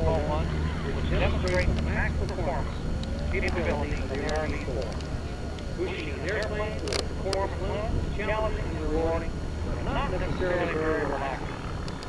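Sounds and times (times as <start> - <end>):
distant aircraft engine drone: 0.0 - 12.0
voices talking: 0.0 - 12.0.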